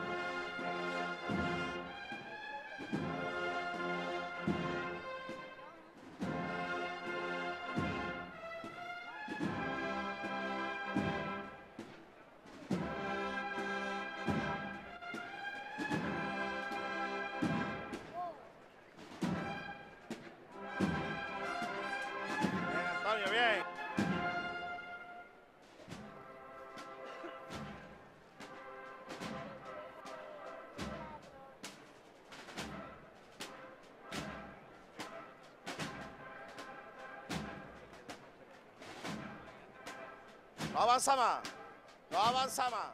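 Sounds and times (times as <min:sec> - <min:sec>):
brass band march: 0:00.0 - 0:42.9
drum beats: 0:00.0 - 0:42.9.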